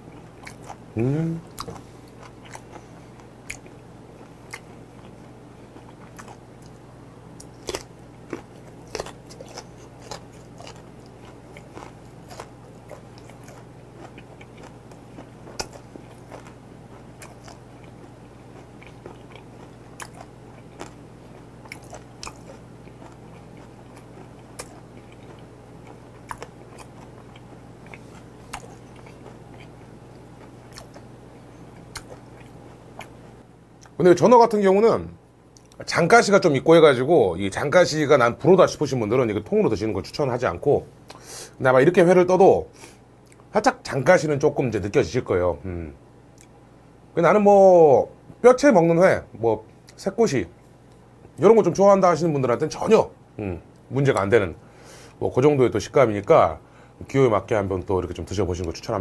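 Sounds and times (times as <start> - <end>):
crunchy chewing of raw fish: 0.0 - 34.0
steady low hum: 0.0 - 59.0.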